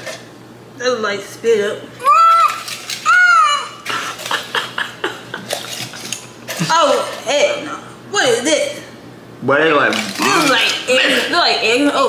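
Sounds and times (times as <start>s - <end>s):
aluminium foil crinkling: 2.4s - 3.4s.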